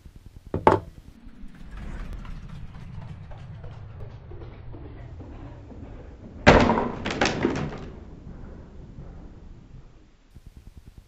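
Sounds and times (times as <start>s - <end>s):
low handling rumble: 0.1s - 10.8s.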